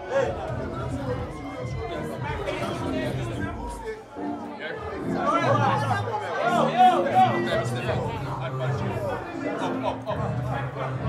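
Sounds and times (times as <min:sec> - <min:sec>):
crowd voices talking and calling: 0:00.0 - 0:11.0
low background music: 0:00.0 - 0:11.0.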